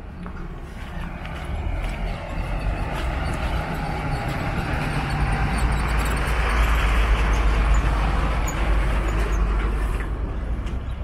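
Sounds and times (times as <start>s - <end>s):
vehicle passing with rumble: 0.6s - 10.6s.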